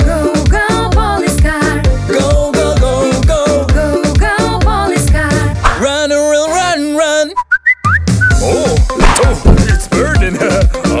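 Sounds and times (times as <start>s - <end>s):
rising whistle-like notes: 7.4s - 8.4s
backing track with drum beat: 7.9s - 11.0s.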